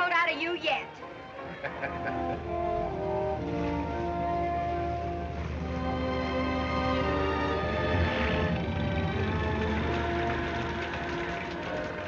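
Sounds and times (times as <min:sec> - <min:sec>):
orchestral film score: 0:00.7 - 0:12.0.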